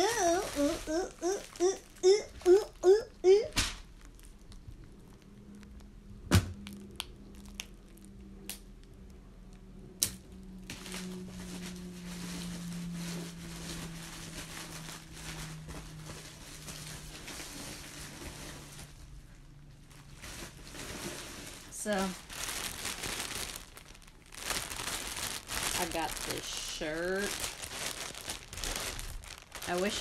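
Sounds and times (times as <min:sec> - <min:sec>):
plastic bags rustling: 0:00.0 - 0:05.7, 0:10.6 - 0:30.0
faint low hum: 0:00.0 - 0:30.0.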